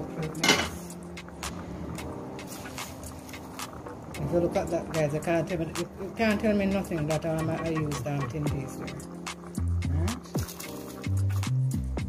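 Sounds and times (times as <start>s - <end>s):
pot boiling with small pops: 0.0s - 9.6s.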